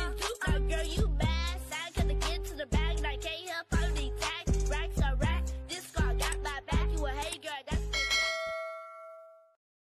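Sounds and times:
bell ding: 7.9 - 9.6.

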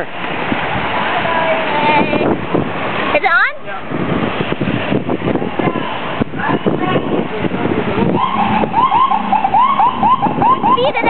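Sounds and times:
street noise: 0.0 - 11.0
wind noise: 0.0 - 11.0
car alarm chirping: 8.2 - 11.0.

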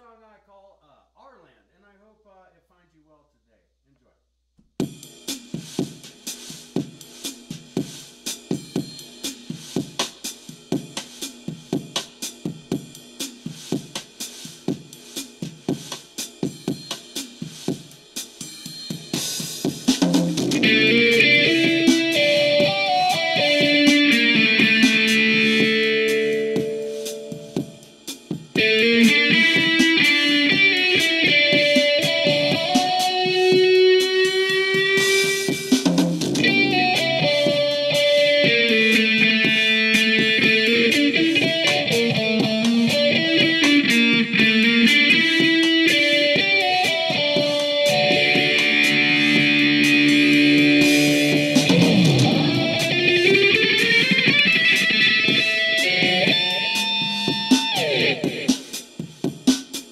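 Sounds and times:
drum beat: 4.6 - 59.9
electric guitar lead notes: 20.5 - 27.6, 28.6 - 58.7.

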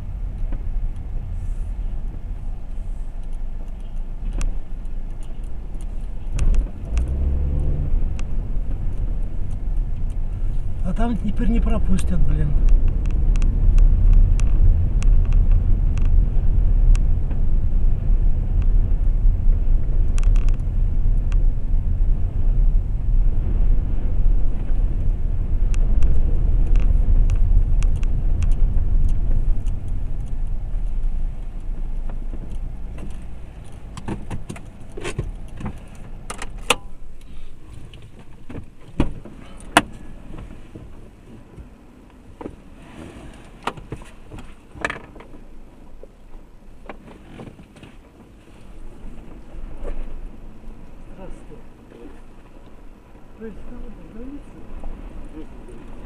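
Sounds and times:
car idling: 0.0 - 42.4
car engine and tyre rumble: 0.0 - 56.0.

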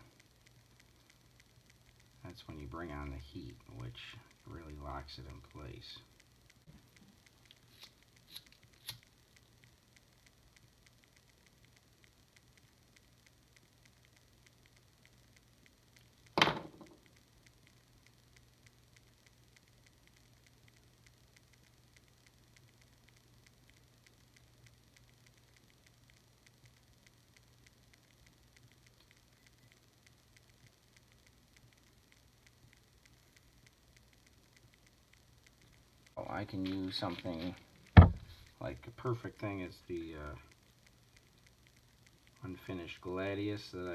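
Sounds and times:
faint low hum: 0.0 - 43.9.

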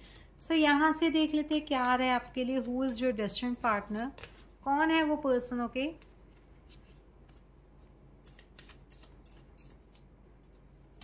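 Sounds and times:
cards shuffling: 8.2 - 11.0.

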